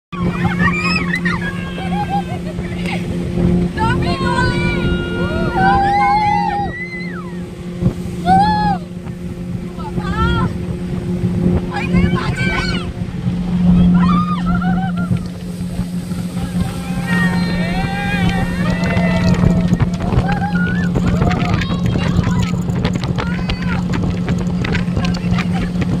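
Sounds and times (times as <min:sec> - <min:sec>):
wind: 0:00.0 - 0:26.0
speedboat engine humming: 0:00.1 - 0:26.0
water noise: 0:00.1 - 0:26.0
people shrieking and laughing: 0:00.2 - 0:02.6, 0:14.0 - 0:15.2
voices: 0:00.2 - 0:07.4, 0:11.5 - 0:15.4, 0:16.0 - 0:26.0.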